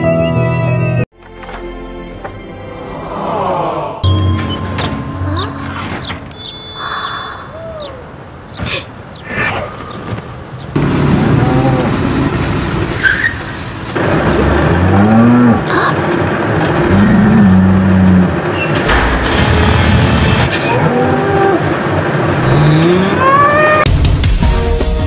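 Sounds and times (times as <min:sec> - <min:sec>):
cattle mooing: 0:22.4 - 0:23.8.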